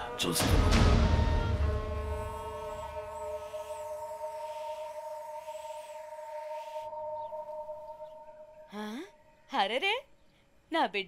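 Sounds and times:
airy synth wash: 0.0 - 8.7
electronic drone: 0.0 - 8.8.

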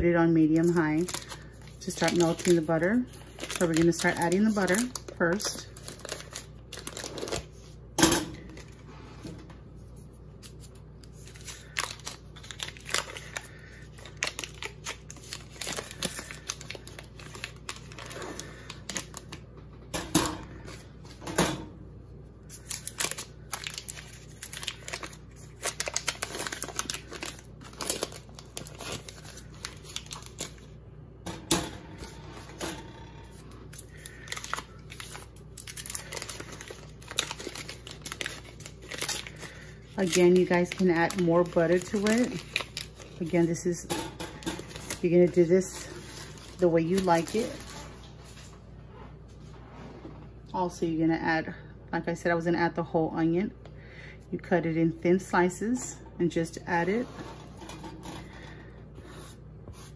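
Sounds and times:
paper wrappers crinkling: 0.4 - 7.8, 9.9 - 19.4, 22.4 - 30.8, 33.3 - 48.6.

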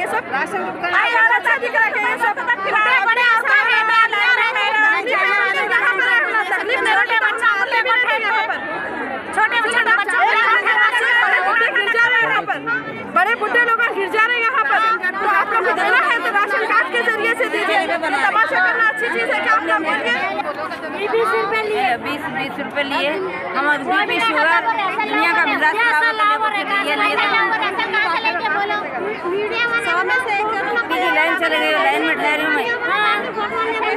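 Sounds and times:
crowd chatter: 0.0 - 33.9
people talking over one another: 0.0 - 33.9.

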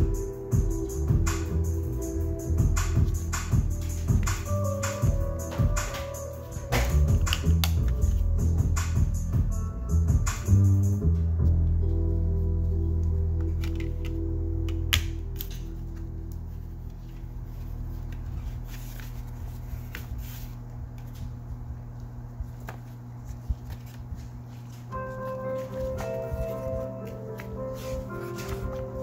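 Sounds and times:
background music with a beat: 0.0 - 12.0
cardboard and paper rustling: 16.7 - 21.4, 22.4 - 29.0.

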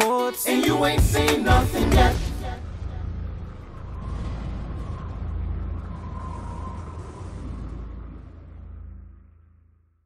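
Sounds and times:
deep rumble: 1.0 - 10.0.

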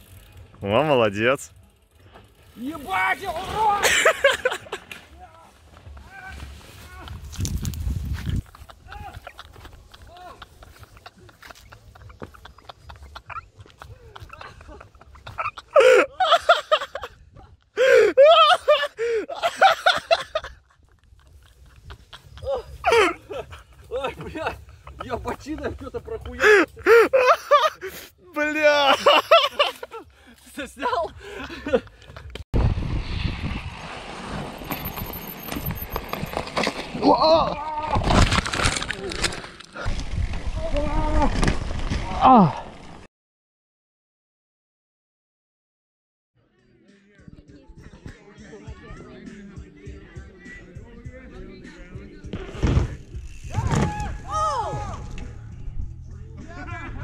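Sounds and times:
wind on microphone: 6.9 - 9.4, 32.6 - 35.9
tyres rumbling on dirt: 32.6 - 43.0
bike knocking and rattling: 34.2 - 37.1, 52.2 - 55.4
bike landing thud on grass: 41.1 - 42.2, 52.3 - 55.4.

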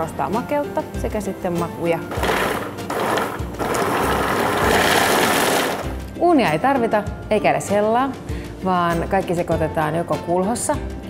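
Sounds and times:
food processor grinding: 2.1 - 6.0.

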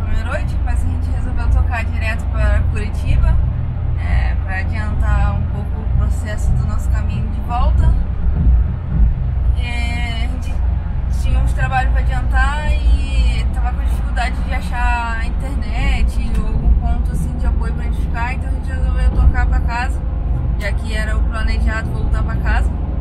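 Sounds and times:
woman talking: 0.0 - 3.4, 4.0 - 8.1, 9.5 - 20.0, 20.6 - 22.7
car engine and road rumble: 0.0 - 23.0.

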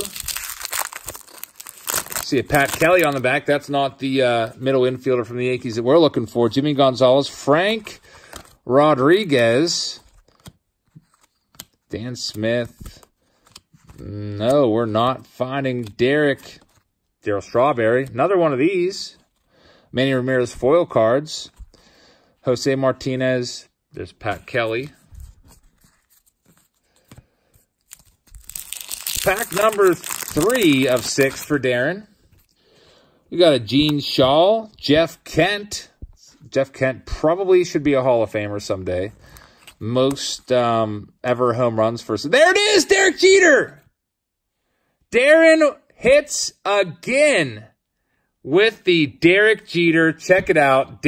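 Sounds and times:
wrapper crinkling: 0.0 - 3.2, 27.8 - 31.5.

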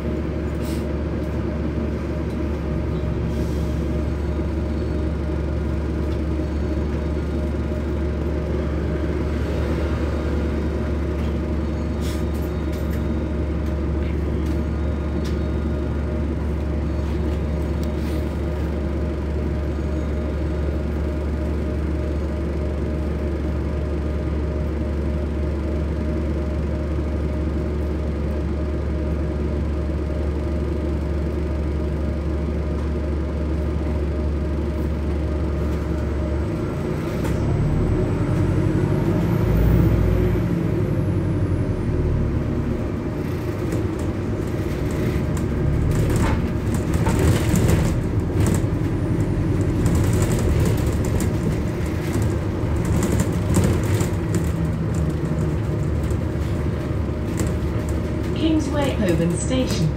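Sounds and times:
bus engine: 0.0 - 59.9
bus interior rattling: 0.0 - 59.9.

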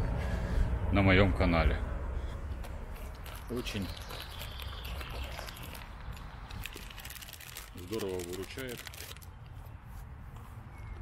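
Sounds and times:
steps on forest floor: 2.6 - 10.6.

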